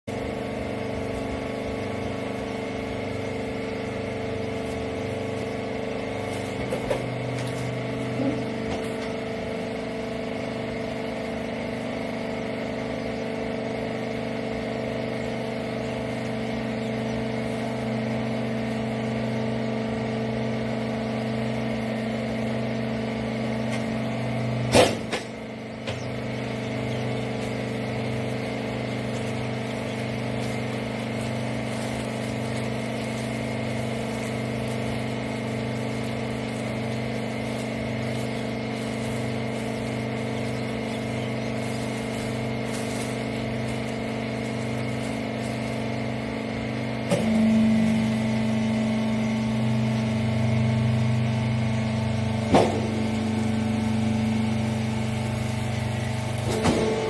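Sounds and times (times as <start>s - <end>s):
baler pump motor humming: 0.0s - 57.0s.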